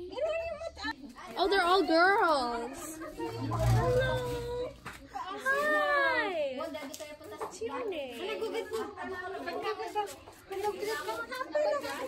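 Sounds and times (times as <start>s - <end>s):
people chattering indistinctly: 0.0s - 12.0s.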